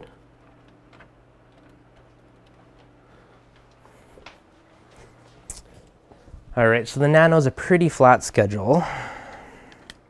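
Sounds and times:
quiet low hum: 0.0s - 10.0s.

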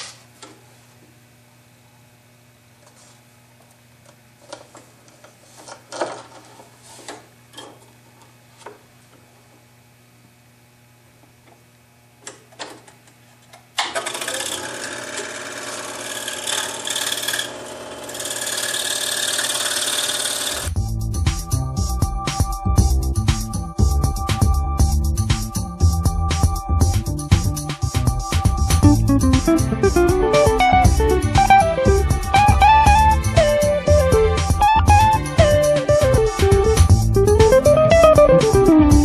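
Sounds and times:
scroll saw cutting plywood: 13.8s - 20.7s.

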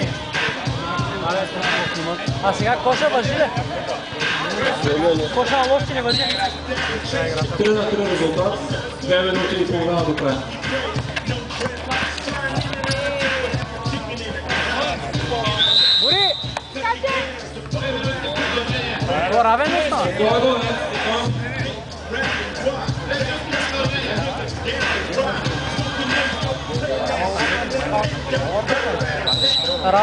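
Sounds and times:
chatter of people: 0.0s - 30.0s
voices of players and spectators: 0.0s - 30.0s
long high whistle: 15.6s - 16.6s, 29.3s - 29.9s.

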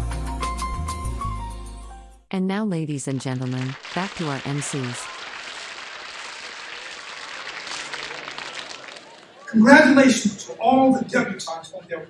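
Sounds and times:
crowd clapping: 3.2s - 10.3s.

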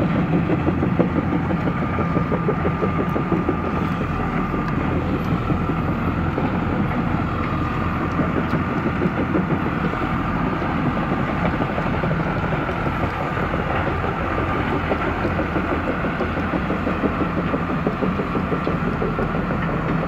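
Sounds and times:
crawler engine running: 0.0s - 20.0s
tracks clattering: 0.0s - 20.0s.

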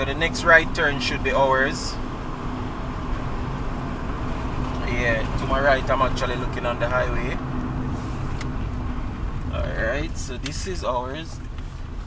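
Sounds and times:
car tyres and engine rumble: 0.0s - 12.0s.

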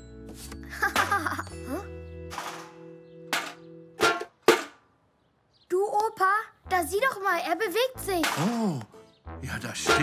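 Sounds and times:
metal bucket hollow knocks: 3.3s - 4.8s.

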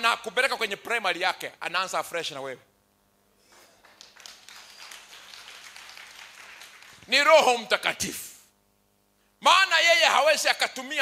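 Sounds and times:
scattered hand clapping: 3.5s - 7.1s.

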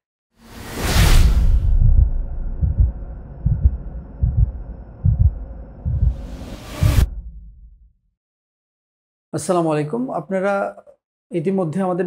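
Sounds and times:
whoosh: 0.4s - 7.9s
low heartbeat-like pulses: 1.4s - 7.9s
faint hum: 1.8s - 6.4s.

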